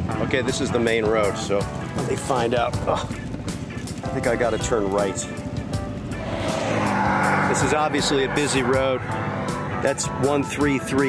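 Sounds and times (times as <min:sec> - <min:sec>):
background music: 0:00.0 - 0:11.0
truck passing on road: 0:05.8 - 0:10.4.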